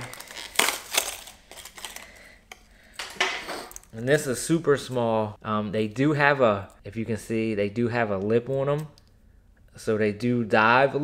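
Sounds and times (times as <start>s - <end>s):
plastic packaging crinkling: 0.0s - 4.0s.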